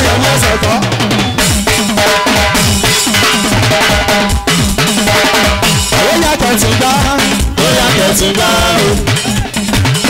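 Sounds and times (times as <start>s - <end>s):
band music: 0.0s - 10.0s
drums and percussion: 0.0s - 10.0s.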